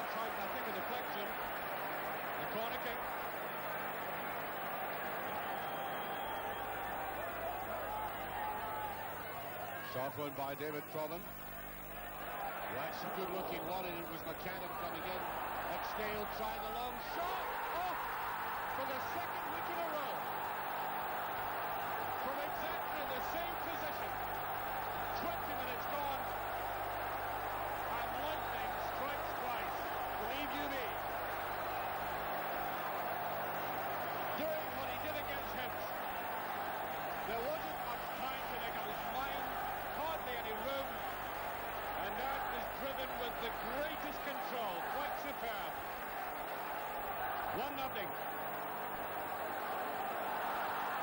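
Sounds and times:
stadium crowd cheering: 0:00.0 - 0:51.0.

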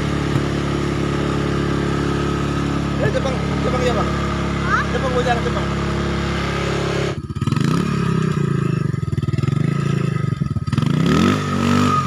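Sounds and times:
atv engine idling: 0:00.0 - 0:12.0.

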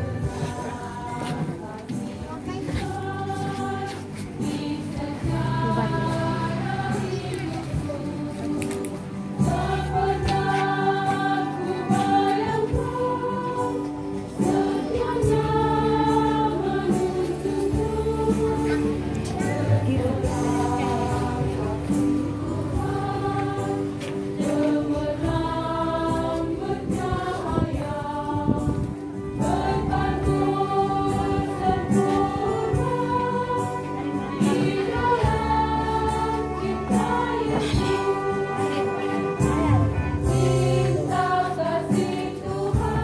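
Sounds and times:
choir singing a hymn: 0:00.0 - 0:43.0.

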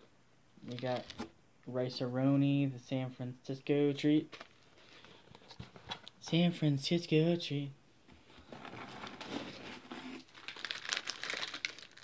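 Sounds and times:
packaging crinkling and rustling: 0:08.4 - 0:12.0.

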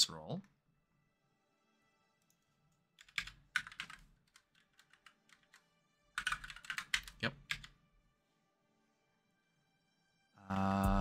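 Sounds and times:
typing on computer keyboard: 0:03.0 - 0:05.6, 0:06.2 - 0:07.7.

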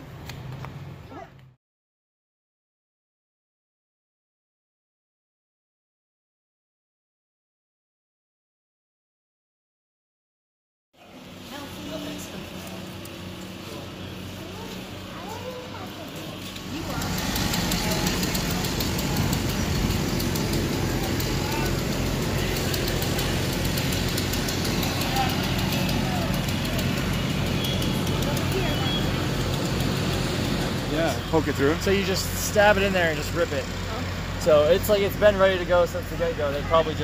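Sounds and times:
diesel engine rumbling: 0:11.0 - 0:37.0
voices: 0:11.0 - 0:37.0.

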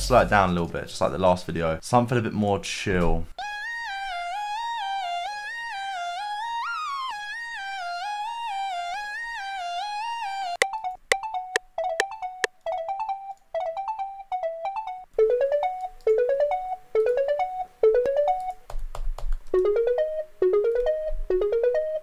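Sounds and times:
synth pluck melody: 0:10.6 - 0:18.5, 0:19.6 - 0:22.0.

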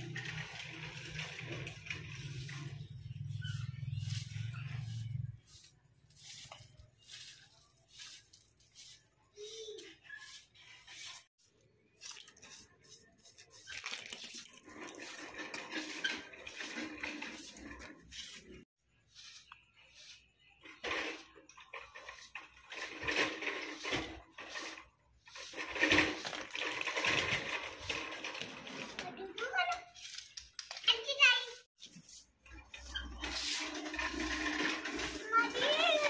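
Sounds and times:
broom swishing on concrete: 0:01.1 - 0:27.2, 0:27.9 - 0:36.0.

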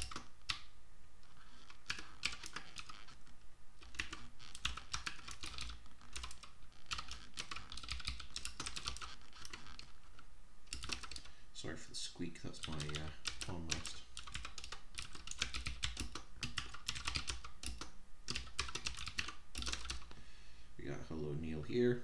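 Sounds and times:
typing on computer keyboard: 0:00.0 - 0:00.7, 0:01.6 - 0:03.2, 0:03.8 - 0:09.9, 0:10.7 - 0:11.3, 0:12.6 - 0:20.1.

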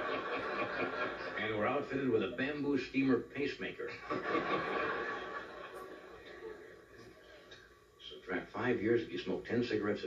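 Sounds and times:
studio audience laughing: 0:00.0 - 0:01.6, 0:03.9 - 0:07.0.

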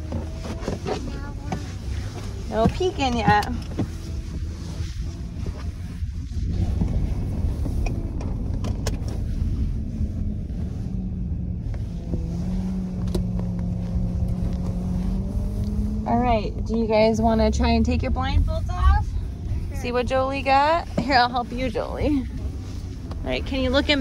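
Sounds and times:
car engine and road rumble: 0:00.0 - 0:24.0.

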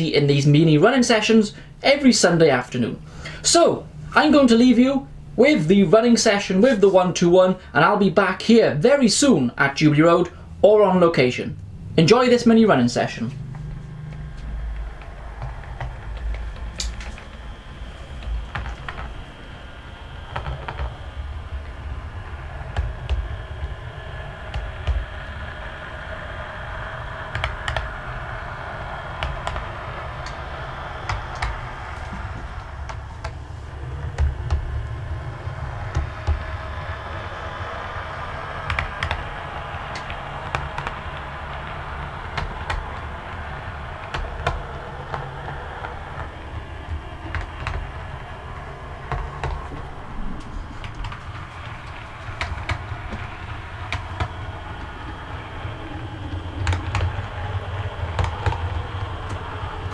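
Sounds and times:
wheels clicking over track: 0:13.2 - 0:59.9
model train motor rumble and hum: 0:13.3 - 0:59.9.

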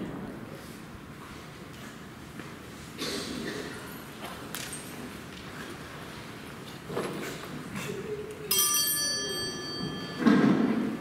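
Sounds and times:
small bell ringing: 0:08.5 - 0:10.6.

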